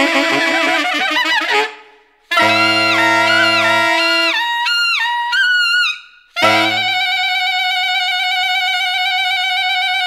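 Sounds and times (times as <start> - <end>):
saxophone holding high note: 2.3 - 4.6, 6.4 - 7.3.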